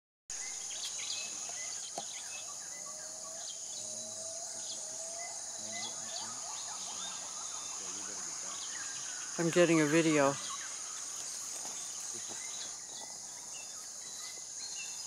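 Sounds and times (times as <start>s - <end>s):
bird calls: 0.3s - 15.0s
high-pitched insect drone: 0.4s - 15.0s.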